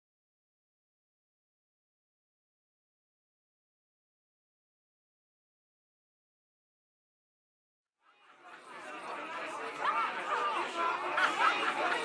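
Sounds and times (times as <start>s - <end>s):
babble of overlapping voices: 8.0s - 12.0s.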